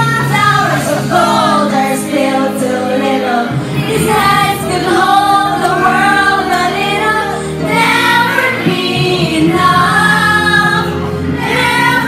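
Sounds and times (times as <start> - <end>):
women singing karaoke: 0.0 - 12.0.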